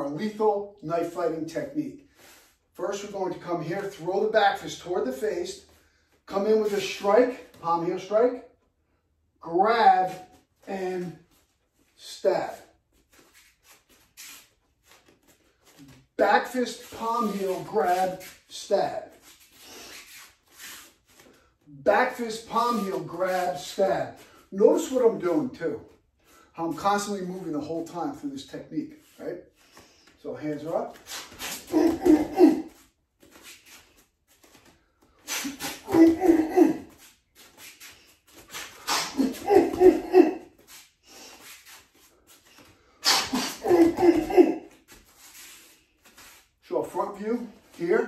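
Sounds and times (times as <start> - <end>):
soft rustling of clothing: 9.9 - 43.0, 43.8 - 48.0
bare feet shifting: 30.6 - 46.6
man grunting: 31.6 - 32.8, 35.4 - 37.0, 38.9 - 40.5, 43.2 - 44.7.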